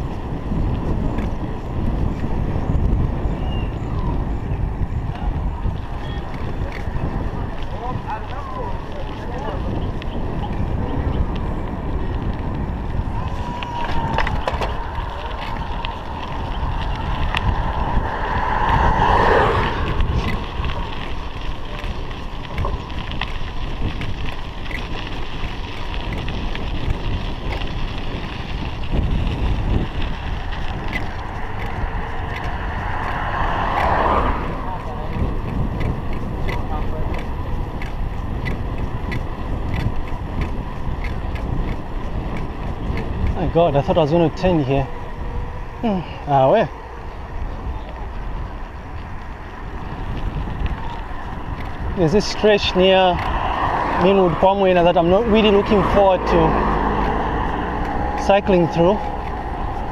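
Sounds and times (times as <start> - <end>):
bicycle rolling on paved road: 0.0 - 59.9
wind rushing over microphone: 0.0 - 59.9.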